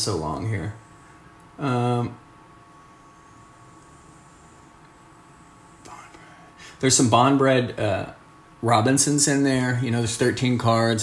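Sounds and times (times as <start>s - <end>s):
man speaking: 0.0s - 0.8s, 1.6s - 2.2s, 6.8s - 11.0s
faint high whine: 0.0s - 11.0s.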